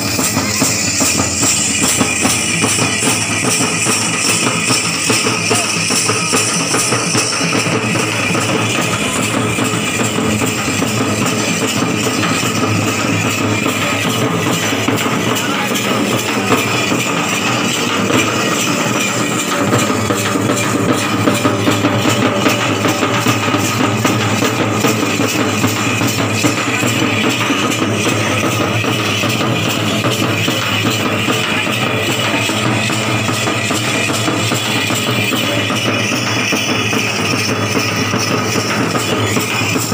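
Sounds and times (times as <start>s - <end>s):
loud music with fast drumming: 0.0s - 39.9s.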